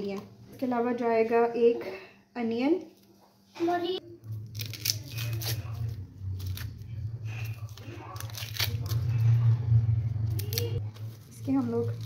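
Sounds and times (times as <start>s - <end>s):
knife scratching onion skin: 4.4s - 9.2s.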